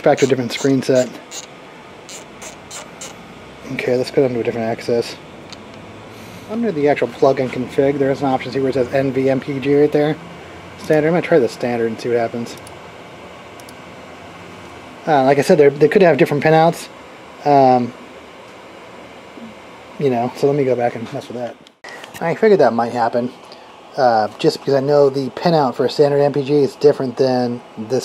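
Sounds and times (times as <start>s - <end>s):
fan running: 0.0s - 28.0s.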